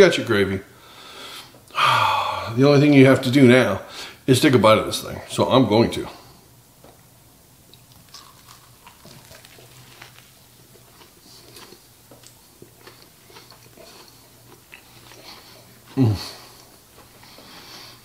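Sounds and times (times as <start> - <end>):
low steady hum: 0.0 - 18.0
man chewing crunchy food: 7.7 - 18.0.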